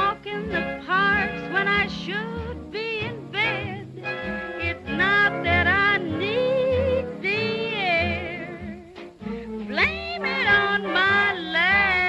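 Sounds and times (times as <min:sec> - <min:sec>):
swing dance band music: 0:00.0 - 0:12.0.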